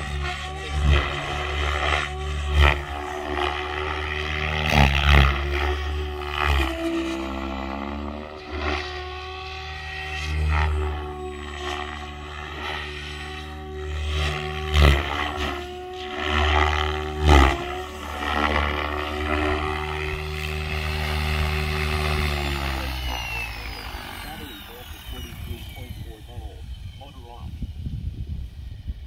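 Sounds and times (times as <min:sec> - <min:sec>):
helicopter rotor hum: 0:00.0 - 0:29.0
high whine sliding downward: 0:00.0 - 0:29.0.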